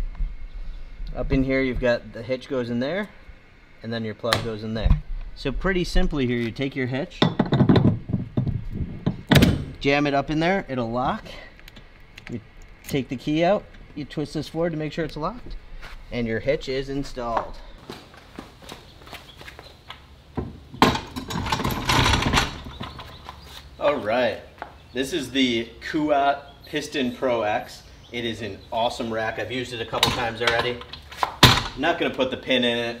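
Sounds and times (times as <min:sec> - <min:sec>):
bike rack thud: 0:07.2 - 0:09.8, 0:31.2 - 0:31.8
metal hitch insert knocking: 0:07.2 - 0:09.8
metal scraping and rattling: 0:20.8 - 0:23.2
sharp metal clunk: 0:31.4 - 0:31.8.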